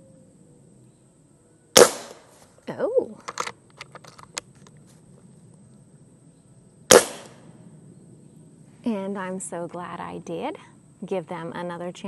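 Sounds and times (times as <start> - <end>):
air rifle shot: 1.8 - 2.3, 6.9 - 7.5.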